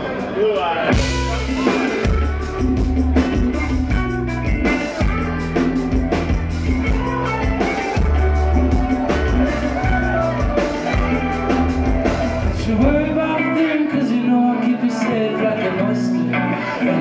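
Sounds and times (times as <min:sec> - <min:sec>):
drum kit: 0:00.0 - 0:14.2
electric guitar: 0:00.0 - 0:17.0
deep sustained bass notes: 0:01.0 - 0:13.4.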